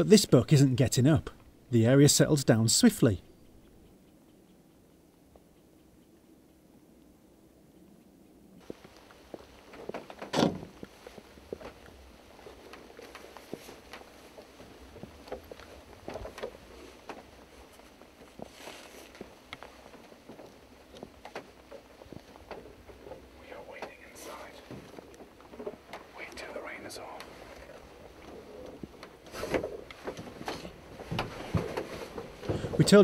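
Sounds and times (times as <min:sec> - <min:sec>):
knocks and creaks on ladder rungs: 0:09.7 - 0:11.8, 0:28.6 - 0:33.0
clothing rustling: 0:10.7 - 0:20.2, 0:25.3 - 0:32.9.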